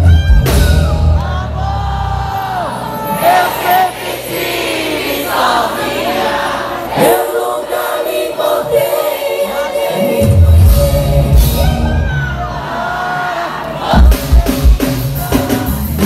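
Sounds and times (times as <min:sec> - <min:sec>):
band playing: 0:00.0 - 0:16.0.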